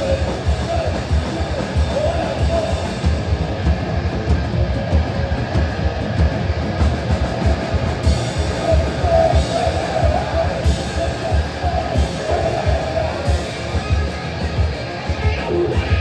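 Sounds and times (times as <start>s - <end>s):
bass guitar: 0.0s - 16.0s
distorted electric guitar: 0.0s - 16.0s
fast driving drums: 0.0s - 16.0s.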